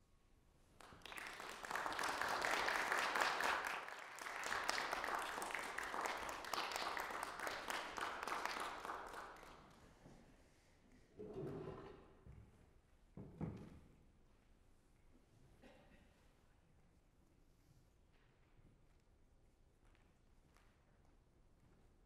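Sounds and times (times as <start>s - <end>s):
audience applauding: 0.8s - 9.6s.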